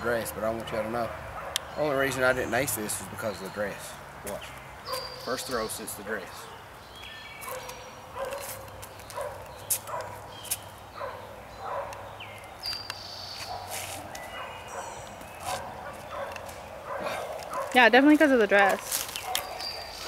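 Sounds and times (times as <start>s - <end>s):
birds singing: 0.0s - 20.0s
animal barking calls: 1.0s - 2.8s, 4.8s - 5.6s, 7.4s - 12.4s, 13.1s - 18.2s, 18.8s - 20.0s.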